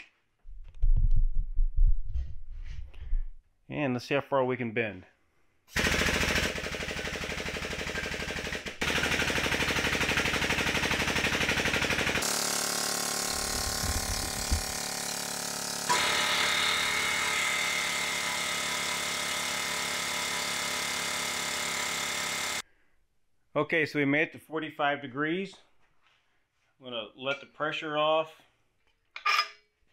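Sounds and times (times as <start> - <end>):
air pump chattering: 5.8 - 22.6.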